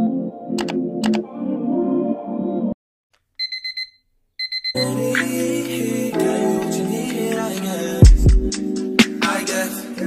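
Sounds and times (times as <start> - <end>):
song playing: 0.0 - 2.8, 4.8 - 10.0
electronic alarm beeping: 3.4 - 4.9.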